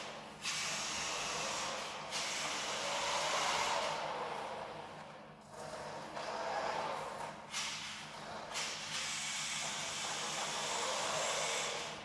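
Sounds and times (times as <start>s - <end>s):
toy car motor whirring: 5.5s - 12.0s.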